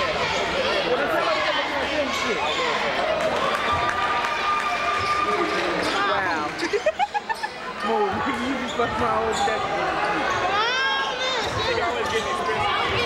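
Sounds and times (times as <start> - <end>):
crowd voices: 0.0 - 13.0
sneakers squeaking on court: 7.4 - 13.0.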